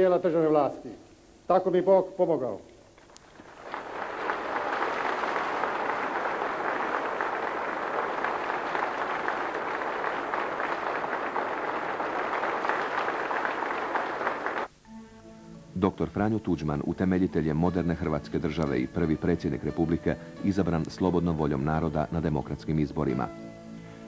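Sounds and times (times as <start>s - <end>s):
audience applauding: 3.1s - 14.7s.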